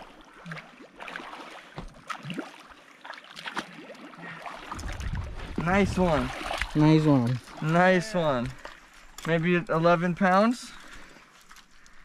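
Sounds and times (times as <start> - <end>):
fish thrashing in water: 0.0 - 8.9
person wading in water: 0.0 - 9.4, 10.6 - 12.0.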